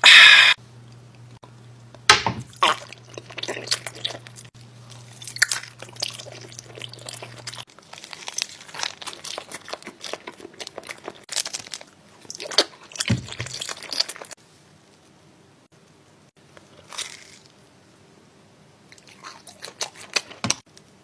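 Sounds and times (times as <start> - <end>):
crunchy chewing of candy: 2.5 - 14.4, 16.5 - 17.7, 18.9 - 20.6.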